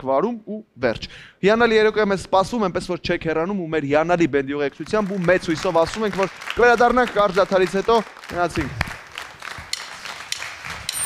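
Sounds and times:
audience clapping: 4.7 - 11.0.

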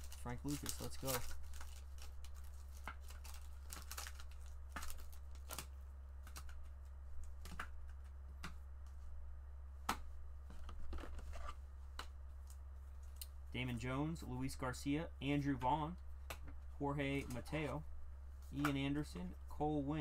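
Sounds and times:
foil wrapper tearing and crinkling: 0.0 - 5.7
steady low hum: 0.0 - 20.0.

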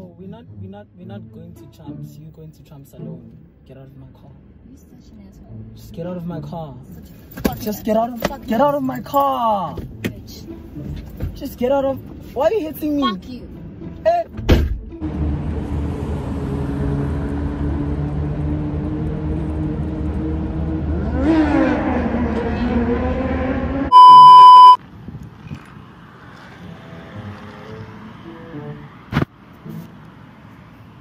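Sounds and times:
car door shutting: 14.4 - 14.9
car engine pulling away: 14.9 - 28.3
censor bleep: 23.9 - 24.8.

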